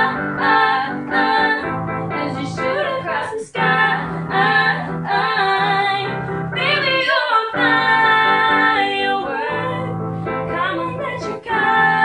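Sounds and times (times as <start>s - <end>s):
digital piano chords: 0.0s - 12.0s
girl singing pop song: 0.0s - 12.0s.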